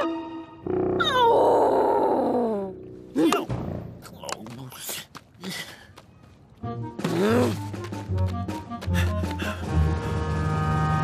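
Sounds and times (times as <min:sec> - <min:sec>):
cartoon character groaning: 0:01.0 - 0:03.5.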